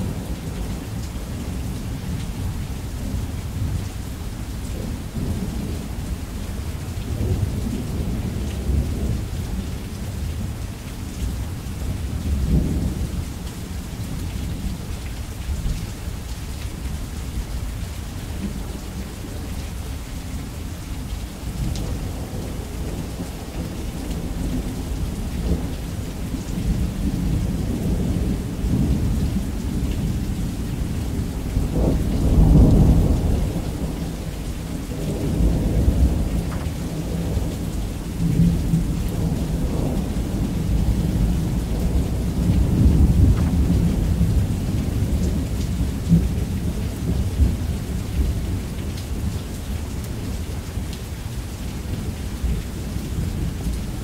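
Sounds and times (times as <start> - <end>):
steady rain: 0.0 - 54.0
low thunder rumbling: 21.0 - 49.5.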